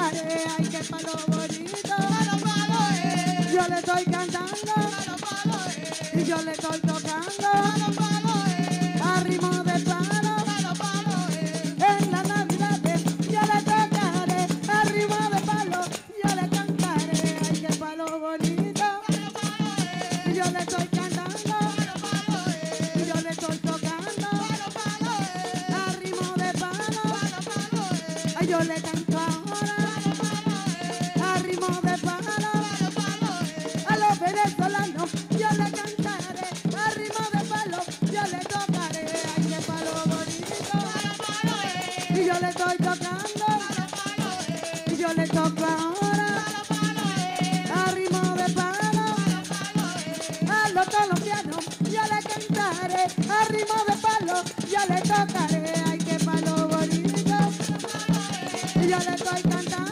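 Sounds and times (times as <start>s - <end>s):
women singing: 0.0s - 59.9s
drums: 6.0s - 25.7s
tambourines: 18.8s - 20.8s, 32.4s - 34.2s, 36.6s - 47.8s, 48.7s - 50.6s, 51.4s - 55.1s, 57.6s - 59.9s.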